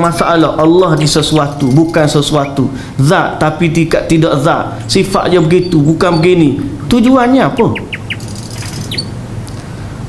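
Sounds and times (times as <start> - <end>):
faint steady hum: 0.0 - 10.0
bird chirps: 5.3 - 6.4, 7.5 - 9.2.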